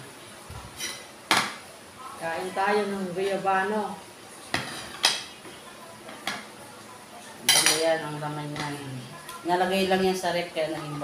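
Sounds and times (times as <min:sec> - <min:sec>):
woman speaking: 0:02.0 - 0:04.0, 0:07.2 - 0:11.0.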